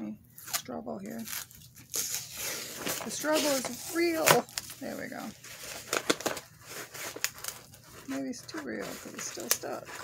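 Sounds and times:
tape and cardboard rustling: 0.4s - 10.0s.

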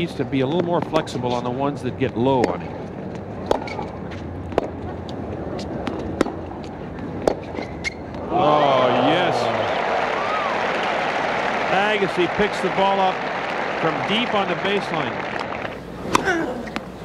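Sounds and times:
tennis ball struck by rackets: 3.4s - 4.8s, 5.6s - 8.3s, 15.2s - 16.9s
crowd cheering and shouting: 8.2s - 15.7s
crowd murmur: 8.2s - 17.0s
applause: 8.5s - 15.7s.

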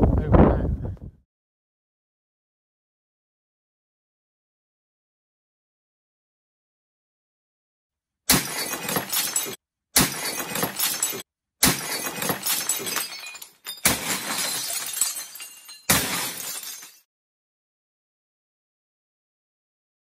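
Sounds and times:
ceramic plates smashing: 8.3s - 17.1s.

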